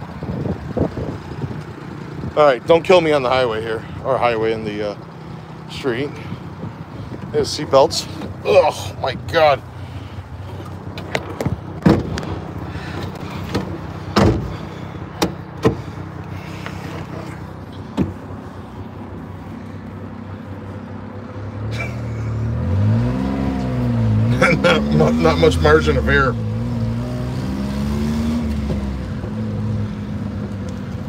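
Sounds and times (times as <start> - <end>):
truck engine revving through gears: 21.6 - 31.0.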